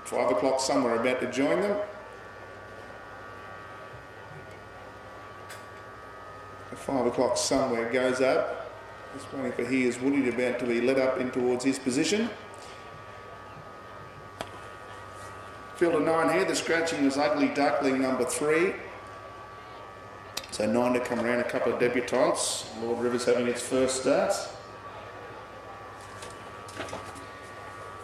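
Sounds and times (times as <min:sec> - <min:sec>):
low hum and hiss: 0:00.0 - 0:28.0.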